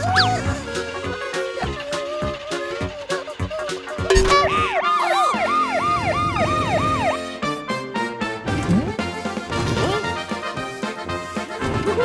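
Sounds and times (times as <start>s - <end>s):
cartoon siren: 4.1s - 7.3s.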